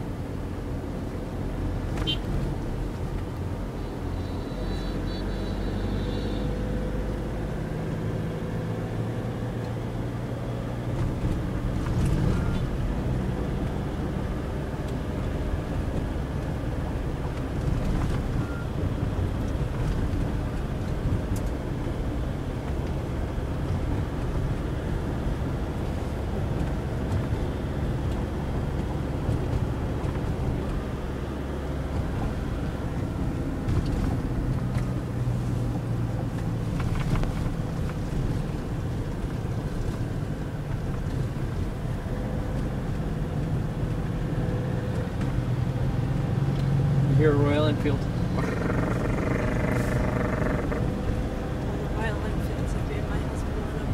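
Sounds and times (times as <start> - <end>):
car engine and road noise: 0.0 - 53.9.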